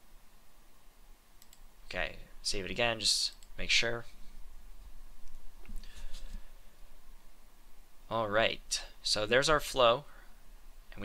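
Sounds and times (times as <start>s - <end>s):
faint room noise: 0.0s - 11.0s
computer mouse clicks: 1.4s - 1.7s, 3.3s - 3.6s.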